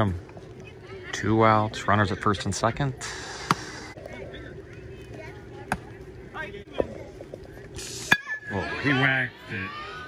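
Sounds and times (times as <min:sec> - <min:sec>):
faint voices of players: 0:00.0 - 0:10.0.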